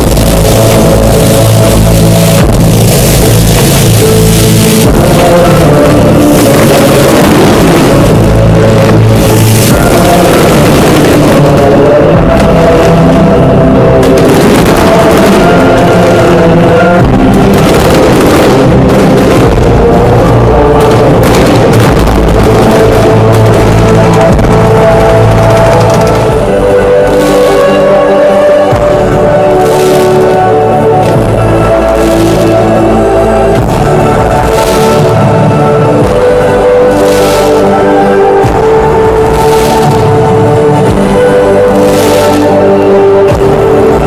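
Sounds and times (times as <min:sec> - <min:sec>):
fireworks booming and crackling: 0:00.0 - 0:44.0
loud music: 0:00.0 - 0:44.0.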